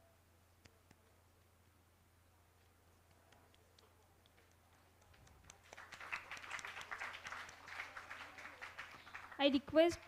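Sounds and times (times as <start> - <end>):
audience applauding: 4.7 - 10.0.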